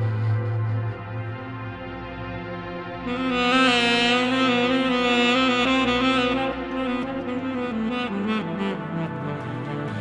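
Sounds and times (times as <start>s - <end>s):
saxophone melody: 2.9s - 10.0s.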